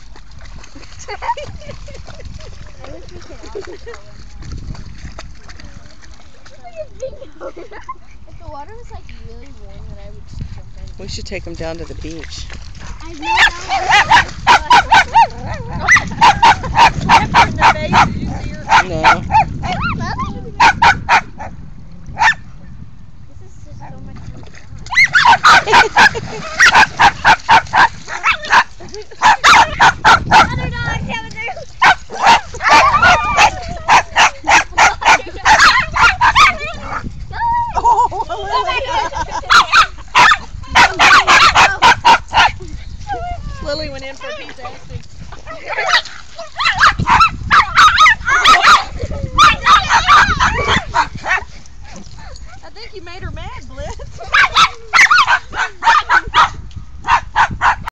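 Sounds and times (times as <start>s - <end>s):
dog barking: 13.3s - 18.1s, 18.7s - 20.0s, 20.6s - 21.5s, 22.2s - 22.4s, 25.0s - 30.6s, 31.8s - 37.0s, 39.5s - 42.6s, 45.7s - 46.0s, 46.6s - 51.5s, 54.3s - 57.9s.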